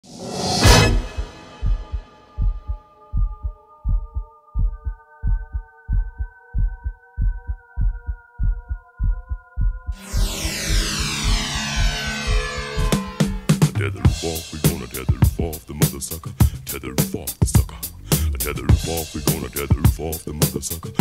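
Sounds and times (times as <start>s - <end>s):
low heartbeat-like thudding: 1.6s - 10.0s
held synthesizer chord: 10.0s - 13.7s
falling sweeping tones: 10.0s - 13.8s.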